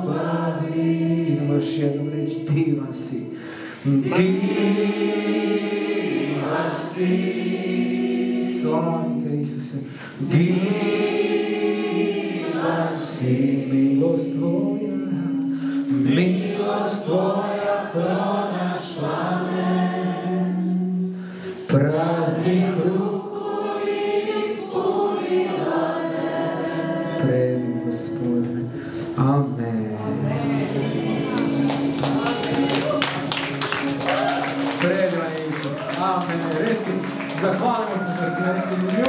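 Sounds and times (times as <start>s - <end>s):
group singing a worship song: 0.0s - 2.6s, 3.4s - 34.6s
instrumental accompaniment: 27.6s - 39.0s.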